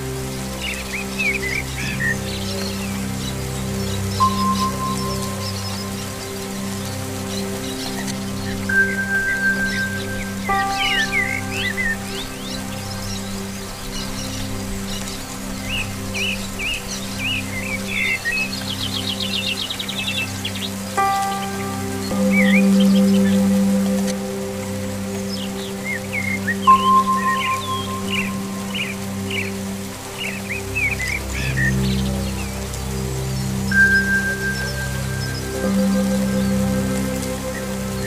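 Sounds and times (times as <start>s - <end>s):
birds chirping: 0.0s - 38.0s
slow ambient music: 0.0s - 38.0s
steady rain: 0.0s - 38.0s.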